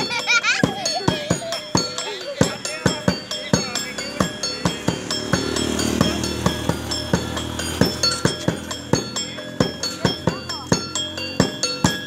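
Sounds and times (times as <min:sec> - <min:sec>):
drum beaten in quick rhythm: 0:00.0 - 0:12.0
metal percussion clanging: 0:00.0 - 0:12.0.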